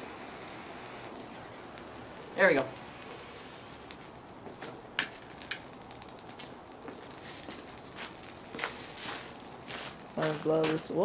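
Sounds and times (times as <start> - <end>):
burning ball hissing and crackling: 0.0 - 11.0.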